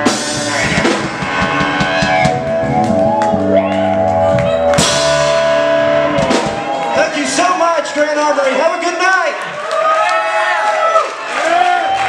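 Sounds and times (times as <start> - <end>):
live rock band playing: 0.0 - 9.0.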